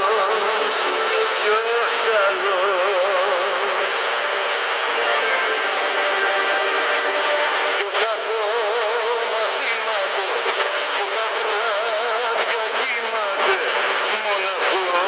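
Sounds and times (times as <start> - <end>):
music on am radio: 0.0 - 15.0
radio crackle: 0.0 - 15.0.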